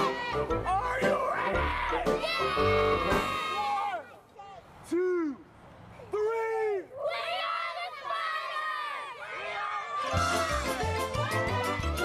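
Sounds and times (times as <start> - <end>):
children shouting: 1.2 - 4.2, 6.9 - 12.0.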